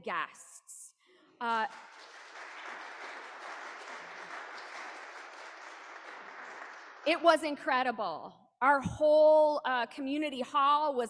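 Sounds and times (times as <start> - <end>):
congregation applauding: 1.4 - 7.2.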